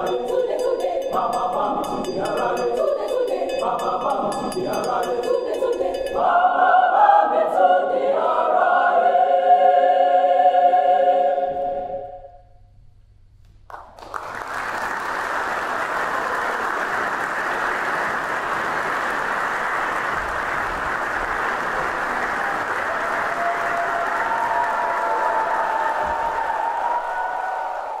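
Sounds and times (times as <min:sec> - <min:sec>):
mixed-voice choir singing: 0:00.0 - 0:12.4
audience applause: 0:13.7 - 0:28.0.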